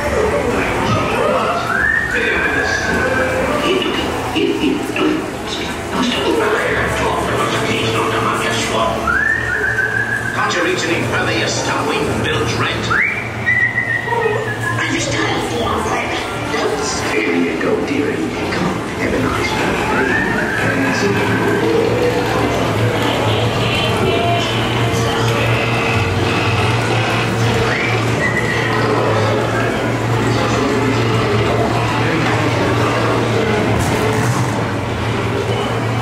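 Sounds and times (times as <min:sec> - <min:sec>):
rising call: 0:09.0 - 0:10.4
person whistling: 0:09.1 - 0:10.4, 0:12.9 - 0:14.6
men's voices: 0:16.7 - 0:22.8
ride music and effects: 0:18.7 - 0:36.0.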